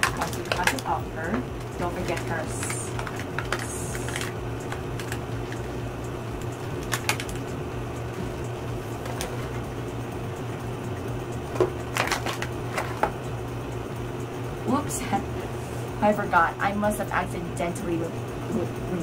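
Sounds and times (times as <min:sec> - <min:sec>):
plastic package crackling: 0:00.0 - 0:01.0, 0:11.9 - 0:13.0
steady low hum: 0:00.0 - 0:19.0.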